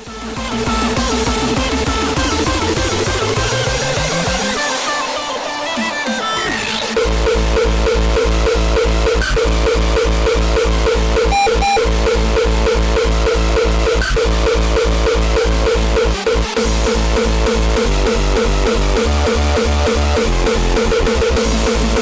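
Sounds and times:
hardstyle dance music: 0.0 - 22.0.

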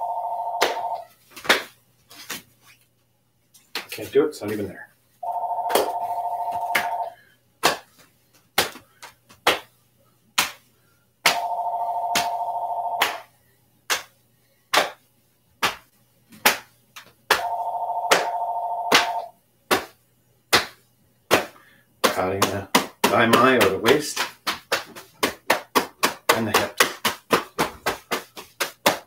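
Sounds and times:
telephone ringing: 0.0 - 1.1, 5.2 - 7.2, 11.3 - 13.2, 17.4 - 19.3
hands patting the body: 0.6 - 2.5, 7.6 - 9.7, 10.4 - 11.4, 13.9 - 14.1, 14.7 - 15.0, 15.6 - 17.4, 18.9 - 29.0.

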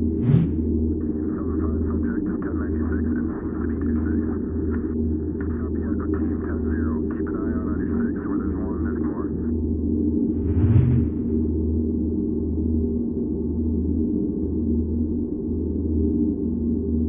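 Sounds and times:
low drone: 0.0 - 17.0.

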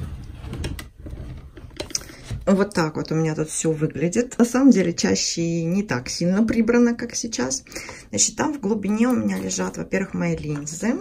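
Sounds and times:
drawer sliding open: 0.0 - 2.5.

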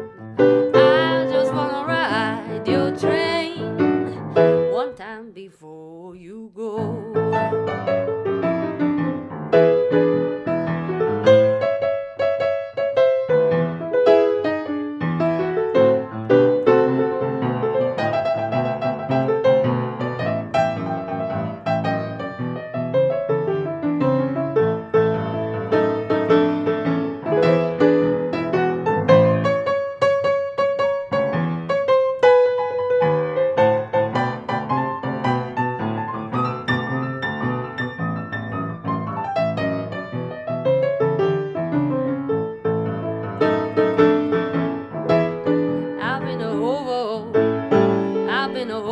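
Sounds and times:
blues piano solo: 0.0 - 5.2, 6.8 - 48.9.

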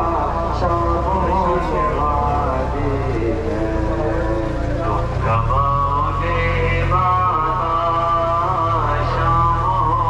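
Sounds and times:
low rumble: 0.0 - 10.0
person chanting: 0.0 - 10.0.

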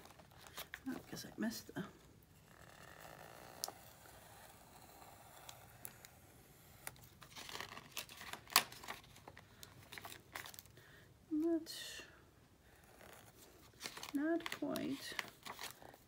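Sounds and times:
craft knife cutting paper: 2.4 - 9.1
small clicks and scratches: 2.4 - 10.6
paper rustling: 6.8 - 10.7, 13.0 - 16.0.

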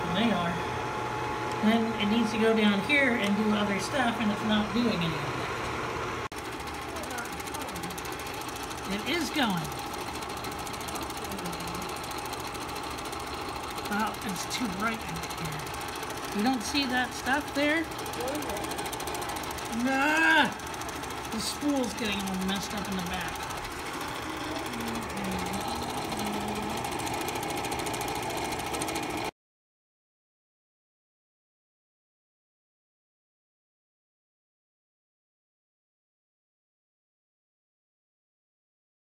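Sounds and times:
steady motor hum: 0.0 - 29.3
film projector clatter: 1.5 - 29.3.

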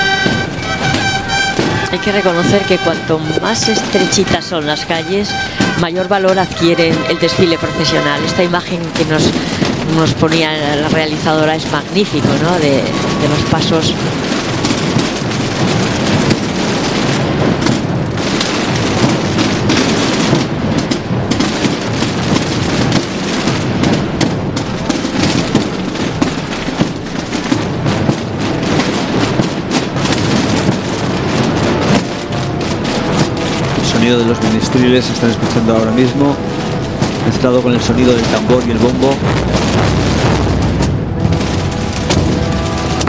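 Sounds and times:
deep bass drum booms: 0.0 - 4.2, 5.3 - 43.0
procession drums playing: 0.0 - 43.0.

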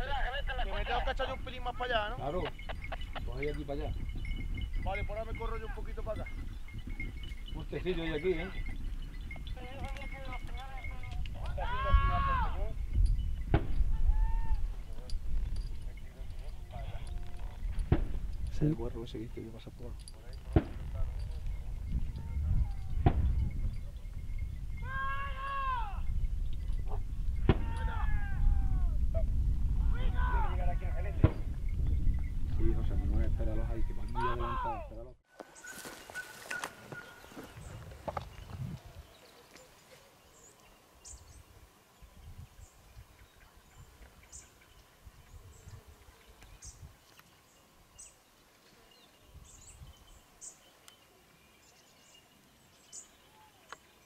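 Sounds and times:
wind buffeting microphone: 0.0 - 35.2, 36.7 - 39.2, 41.1 - 47.0, 49.2 - 50.3
faint bird chirps: 35.5 - 54.0
hounds baying: 35.7 - 37.6.

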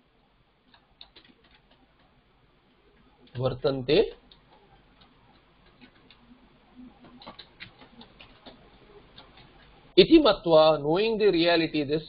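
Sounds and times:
computer keyboard typing: 0.6 - 2.2, 4.2 - 9.9.

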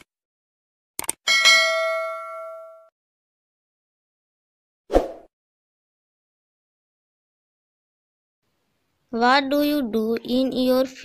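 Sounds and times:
notification bell ding: 1.3 - 2.9.

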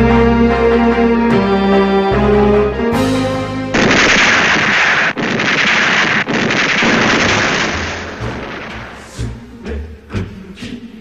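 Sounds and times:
music with held notes: 0.0 - 3.8
explosions: 3.7 - 9.3
dense gunfire: 3.8 - 9.2.

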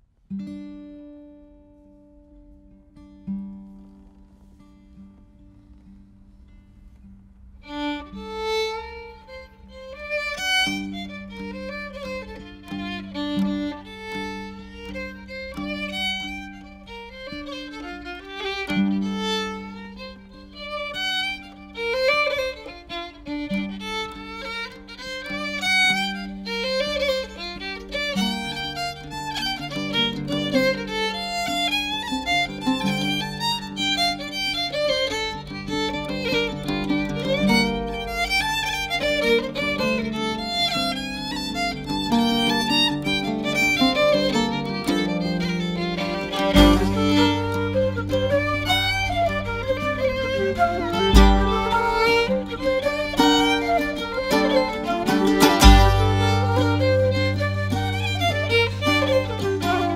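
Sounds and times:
fiddle playing a jig: 7.6 - 59.9
deeper accompaniment: 45.8 - 59.9
low held drone note: 46.0 - 59.9.

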